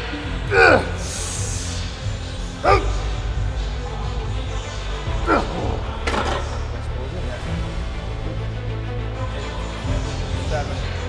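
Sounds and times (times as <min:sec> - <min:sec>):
background music with bass line: 0:00.0 - 0:11.0
man grunting with effort: 0:00.5 - 0:01.7, 0:02.6 - 0:03.2, 0:05.2 - 0:05.8.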